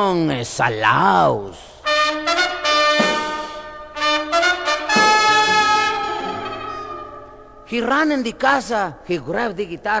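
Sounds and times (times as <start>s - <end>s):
trumpets playing held chords: 1.8s - 7.8s.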